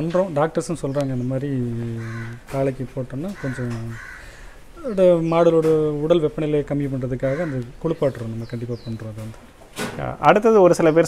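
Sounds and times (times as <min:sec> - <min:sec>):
man speaking: 0:00.0 - 0:04.0, 0:04.8 - 0:11.0
bird calling: 0:00.0 - 0:11.0.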